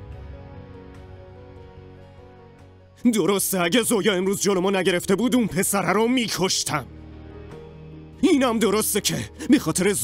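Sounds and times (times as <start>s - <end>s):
soft sustained background score: 0.0s - 10.0s.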